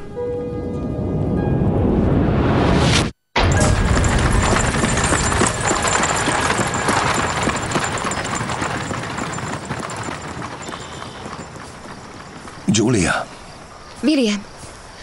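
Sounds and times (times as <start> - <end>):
hooves clip-clopping: 3.5 - 14.8
carriage rattling: 3.7 - 12.7.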